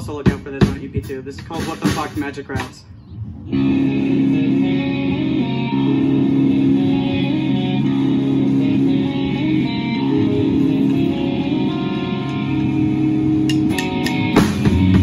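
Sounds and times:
drum hits: 0.0 - 2.8, 13.5 - 15.0
bass guitar: 0.0 - 15.0
electric guitar: 3.4 - 15.0.

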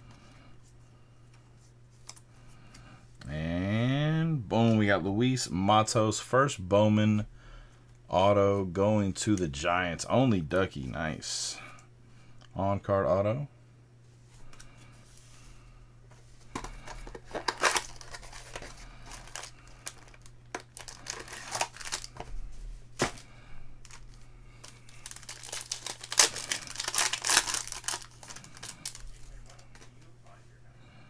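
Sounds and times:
cards shuffling in hands: 16.5 - 22.3, 23.9 - 29.9
foil wrapper tearing and crinkling: 16.8 - 22.2, 23.9 - 29.8.

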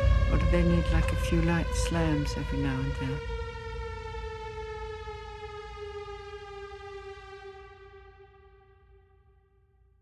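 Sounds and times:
low rumble: 0.0 - 5.5.

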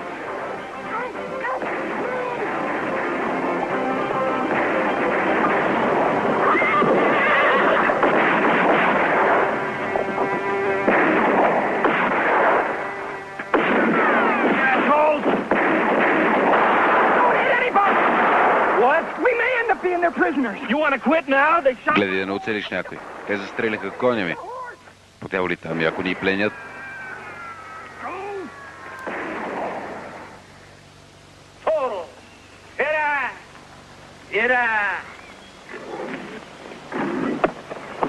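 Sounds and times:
film score music: 0.0 - 17.7
horses neighing and whinnying: 6.4 - 10.7, 26.4 - 30.1.

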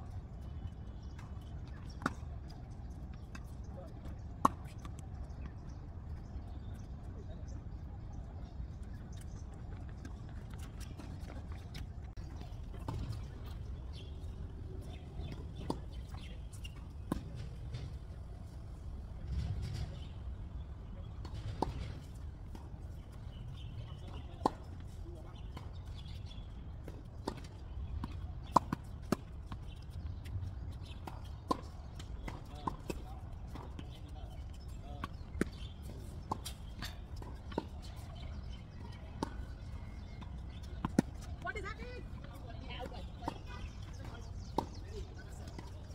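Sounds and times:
tennis balls struck by rackets: 30.8 - 41.3, 42.8 - 45.9.

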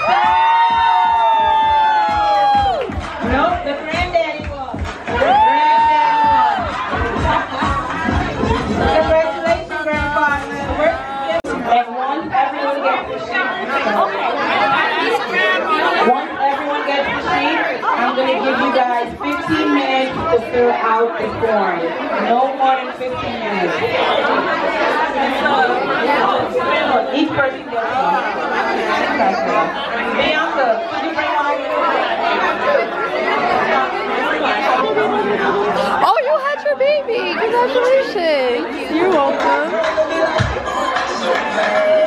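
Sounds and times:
crowd chatter: 0.0 - 42.0
women talking over one another: 35.9 - 42.0.

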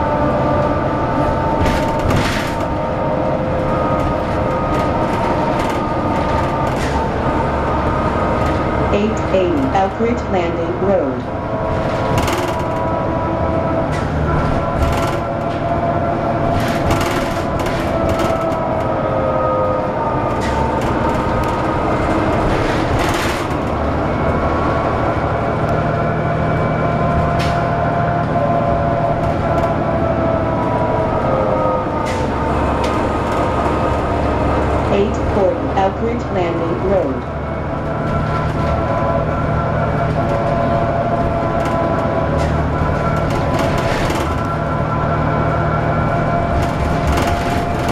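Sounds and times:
rattles and knocks from bus body: 0.0 - 9.6, 11.7 - 13.0, 13.8 - 15.8, 16.4 - 19.1, 20.2 - 24.1, 28.7 - 30.6, 32.0 - 34.8, 37.8 - 45.0, 46.4 - 47.9
bus diesel engine rumble: 0.0 - 47.9.

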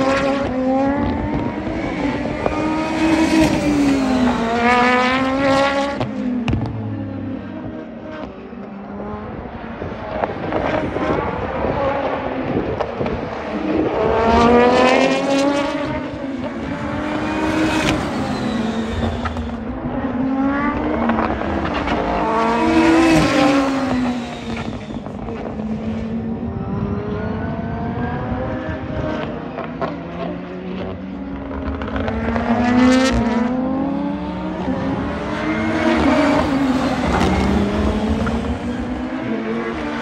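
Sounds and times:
race car accelerating past: 0.0 - 40.0.

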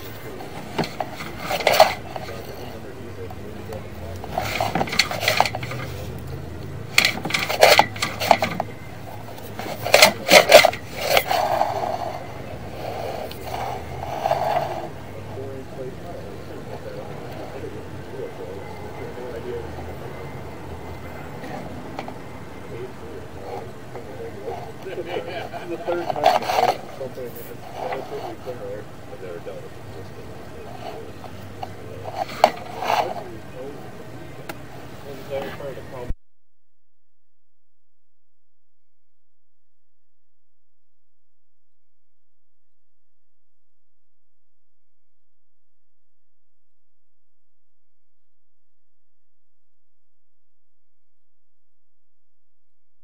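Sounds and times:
camera head scraping pipe: 0.0 - 35.8.

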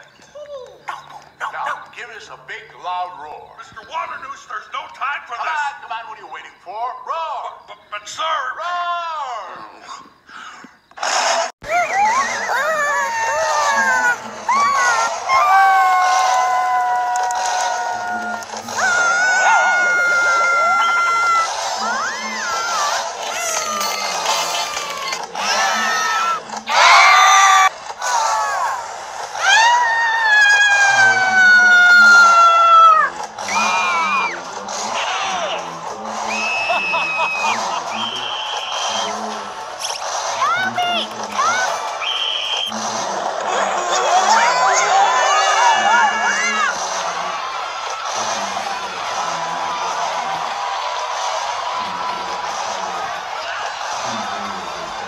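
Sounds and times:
cartoon characters screaming: 11.6 - 35.7, 36.3 - 39.1, 40.0 - 42.8, 43.4 - 54.2.

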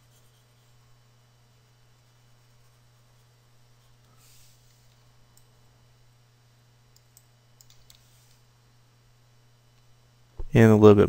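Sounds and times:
low steady hum: 0.0 - 11.0
computer mouse clicks: 6.9 - 8.4.

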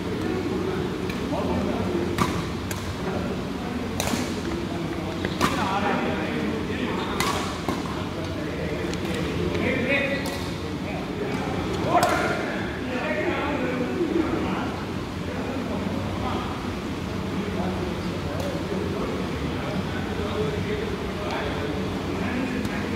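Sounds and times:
voices in echoing hall: 0.0 - 22.9
racquets hitting shuttlecock: 2.1 - 3.1, 3.9 - 5.8, 7.1 - 8.1, 10.1 - 10.6, 11.8 - 12.4.

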